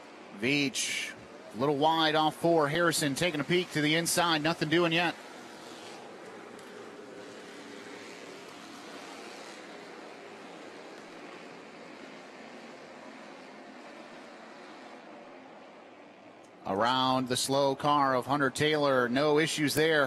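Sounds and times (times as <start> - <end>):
faint hum: 0.0 - 20.0
race cars droning: 0.0 - 20.0.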